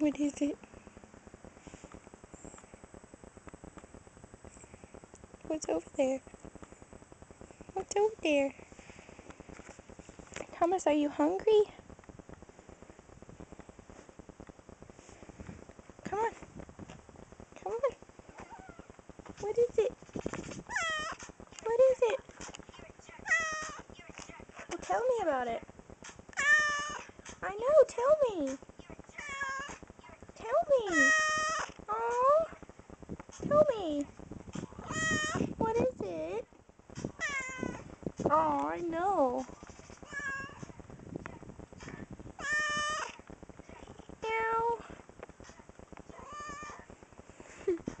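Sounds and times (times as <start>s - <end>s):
cat meowing: 20.7s - 21.2s, 23.2s - 23.8s, 26.4s - 27.1s, 29.2s - 29.8s, 30.9s - 31.7s, 34.8s - 35.4s, 37.2s - 37.9s, 40.0s - 40.7s, 42.4s - 43.2s, 46.1s - 46.9s.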